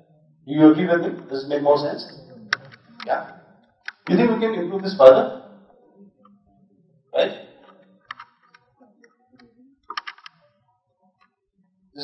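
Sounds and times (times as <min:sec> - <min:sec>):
man speaking into a microphone: 0:00.5 - 0:03.4, 0:04.0 - 0:05.4, 0:07.2 - 0:07.4.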